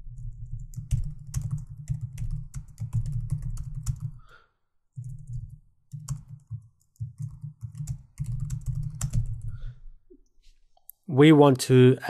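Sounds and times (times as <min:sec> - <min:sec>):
fast typing on computer keyboard: 0:00.1 - 0:04.3, 0:05.0 - 0:09.7.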